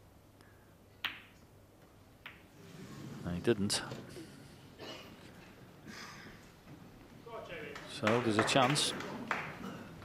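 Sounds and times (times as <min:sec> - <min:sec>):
snooker balls clicking: 0:01.0 - 0:02.6.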